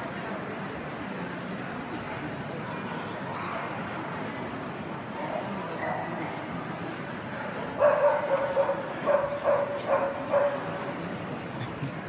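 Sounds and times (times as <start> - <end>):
murmur of crowd: 0.0 - 12.0
dog barking: 7.8 - 10.6.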